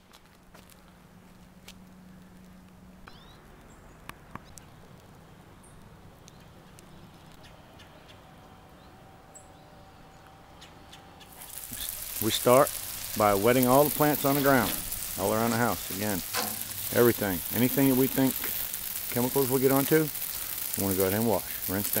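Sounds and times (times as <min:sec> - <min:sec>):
water spraying from hose: 0:11.3 - 0:22.0.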